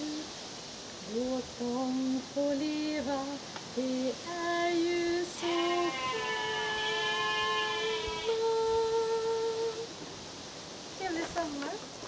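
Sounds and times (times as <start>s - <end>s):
woman singing unaccompanied: 0.0s - 0.4s, 1.0s - 10.0s.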